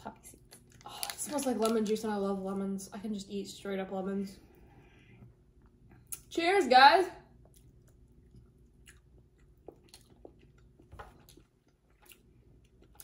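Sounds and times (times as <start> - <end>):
faint chewing: 7.4 - 13.0.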